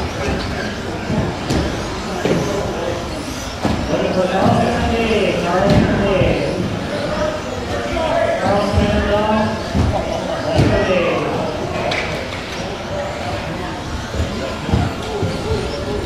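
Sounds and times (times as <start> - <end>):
indistinct voices in echoing hall: 0.0 - 16.0
sharp knocks: 9.6 - 10.9.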